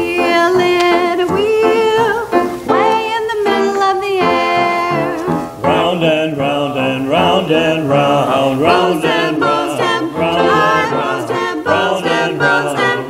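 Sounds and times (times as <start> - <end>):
mixed vocal ensemble singing: 0.0 - 13.0.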